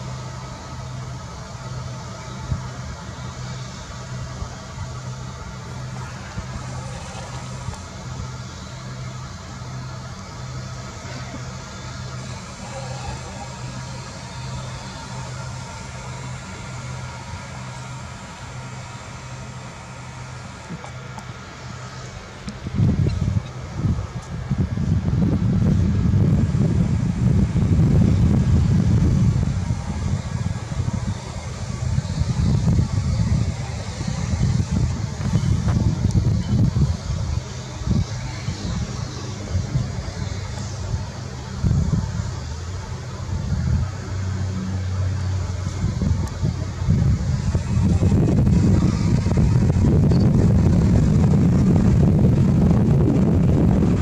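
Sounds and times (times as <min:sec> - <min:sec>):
pulsing engine hum: 0:00.0 - 0:54.0
loud low rumble: 0:21.4 - 0:54.0.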